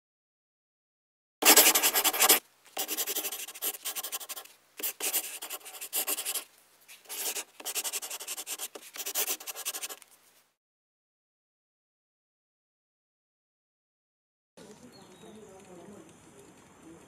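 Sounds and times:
pen scratching on paper: 0:01.4 - 0:10.0.

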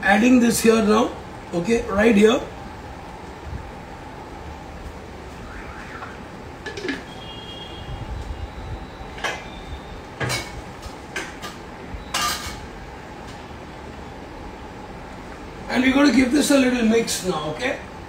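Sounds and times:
steady background hum: 0:00.0 - 0:18.0
cookware and utensils clinking: 0:11.2 - 0:12.7.

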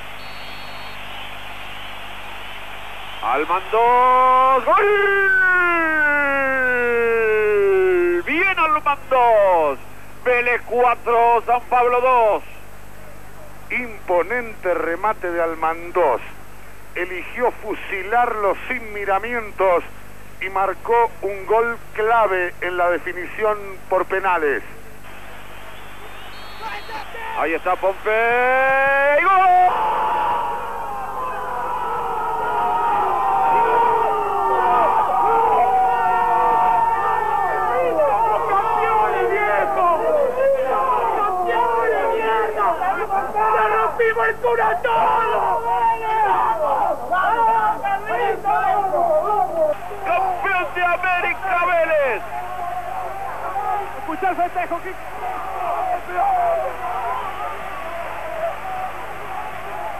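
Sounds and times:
crowd shouting and cheering: 0:00.0 - 0:08.1, 0:25.1 - 0:59.9.

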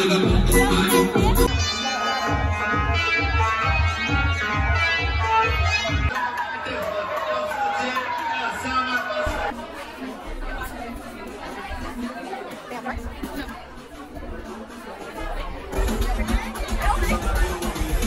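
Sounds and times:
bass-heavy dance music: 0:00.0 - 0:04.9, 0:15.7 - 0:18.0
crowd chatter: 0:00.0 - 0:18.0.

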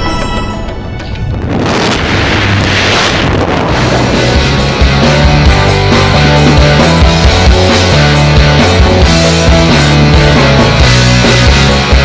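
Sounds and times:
music: 0:00.0 - 0:01.8, 0:03.2 - 0:12.0
wind rushing over microphone: 0:01.0 - 0:05.0.

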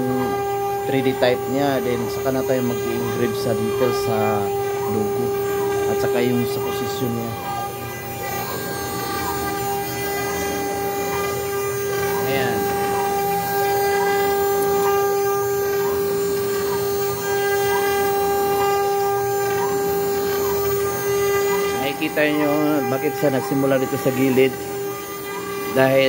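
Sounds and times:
faint motor tone: 0:00.0 - 0:26.0
router spindle high whine: 0:00.0 - 0:26.0.

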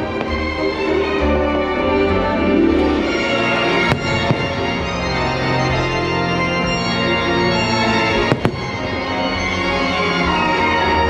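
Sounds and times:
show music: 0:00.0 - 0:11.0
fireworks bursting: 0:02.8 - 0:07.0, 0:07.6 - 0:09.7.

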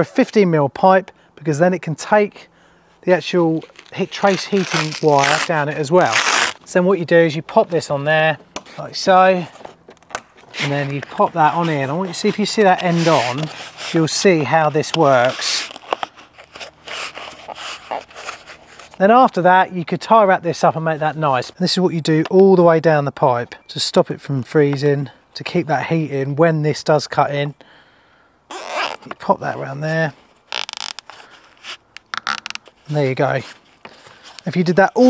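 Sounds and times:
cable tie zipping rattle: 0:03.5 - 0:06.7, 0:08.6 - 0:19.0, 0:28.5 - 0:29.2, 0:30.5 - 0:33.6
foam scraping against pipe: 0:10.4 - 0:19.1.

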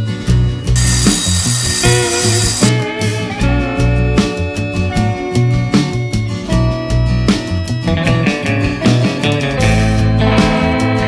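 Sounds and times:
circular saw cutting wood: 0:00.8 - 0:02.7.

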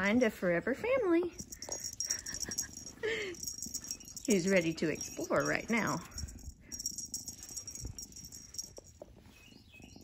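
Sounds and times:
rustling and soft bumps: 0:01.2 - 0:10.0
high chirps: 0:01.4 - 0:10.0.

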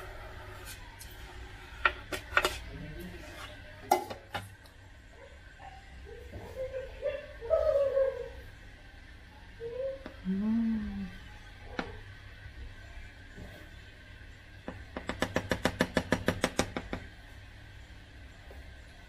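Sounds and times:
wavering pitched vocal sound: 0:09.6 - 0:11.2.

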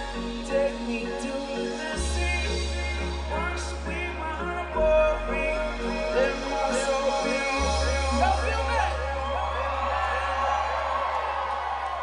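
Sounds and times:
crowd cheering and whooping: 0:07.1 - 0:12.0.

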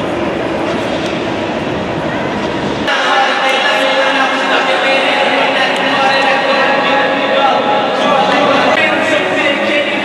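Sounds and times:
stadium crowd ambience: 0:00.0 - 0:10.0.

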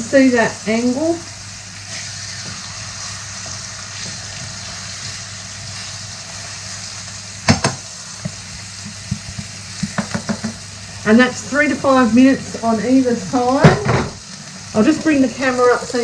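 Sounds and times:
chicken sizzling in a pan: 0:00.0 - 0:16.0.

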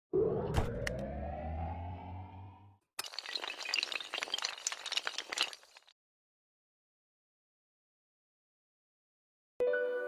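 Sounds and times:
rising synthetic swell: 0:00.1 - 0:02.8
low hum: 0:00.2 - 0:02.8
small hard pieces clattering: 0:03.0 - 0:05.9.

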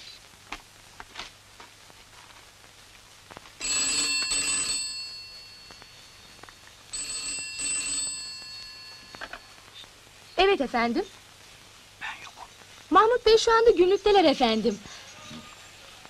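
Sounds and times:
telephone bell ringing: 0:03.6 - 0:09.8.

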